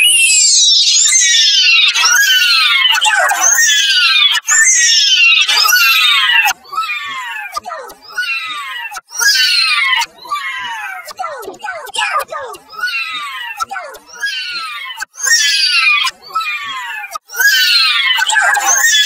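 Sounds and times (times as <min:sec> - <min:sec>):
distorted high-pitched voice crying: 0:00.0 - 0:19.0.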